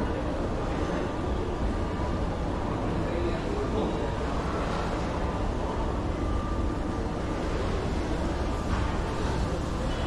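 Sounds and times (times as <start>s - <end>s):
shopping mall background noise: 0.0s - 10.0s.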